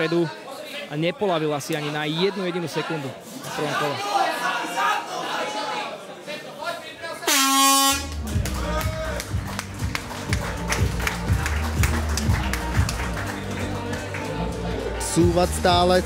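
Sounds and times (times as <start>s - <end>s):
air horn blast: 7.3s - 8.2s
music with thumping beat: 8.3s - 13.2s.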